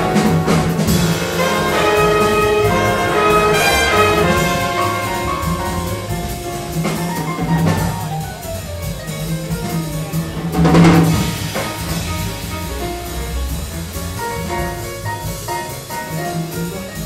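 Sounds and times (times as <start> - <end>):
big band jazz: 0.0 - 17.0
drum kit playing: 0.0 - 17.0.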